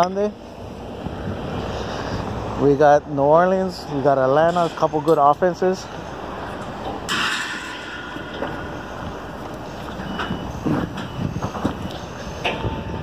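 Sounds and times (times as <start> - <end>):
wind rumbling on microphone: 0.4 - 2.8, 6.1 - 13.0.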